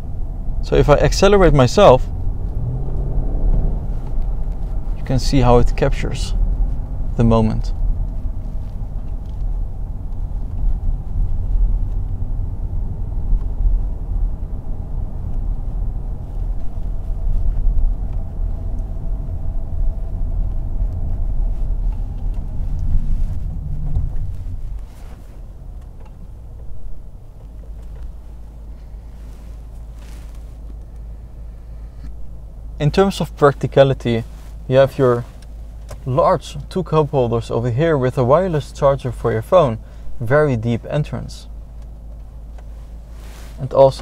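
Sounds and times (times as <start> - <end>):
car cabin rumble: 0.0 - 44.0.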